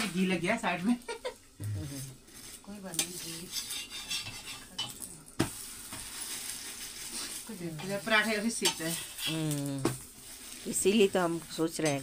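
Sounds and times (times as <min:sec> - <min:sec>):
metal utensils scraping on griddle: 0:01.9 - 0:05.1, 0:05.8 - 0:09.5.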